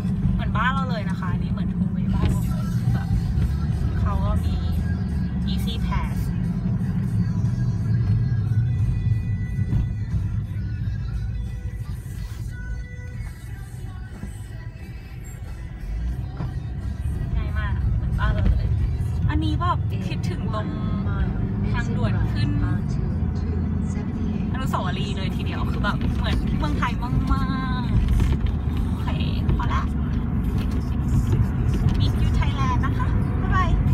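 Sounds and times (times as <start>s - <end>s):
car road and engine rumble: 0.0s - 33.9s
music playing: 0.0s - 33.9s
woman speaking: 0.4s - 2.6s, 4.0s - 4.8s, 5.4s - 6.3s, 17.4s - 18.7s, 24.6s - 28.0s, 29.0s - 30.0s, 32.0s - 33.9s.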